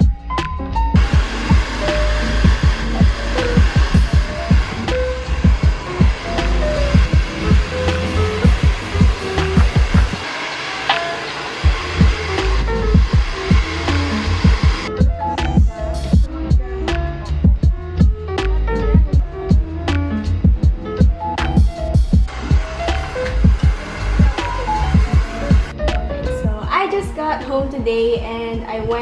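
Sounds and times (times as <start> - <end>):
background music with steady beat: 0.0 - 29.0
hair dryer blowing: 1.0 - 14.9, 22.2 - 25.8.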